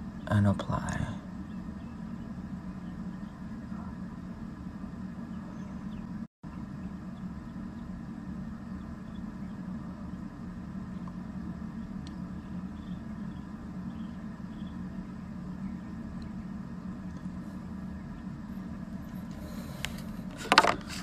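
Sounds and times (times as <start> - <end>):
low background rumble: 0.0 - 21.0.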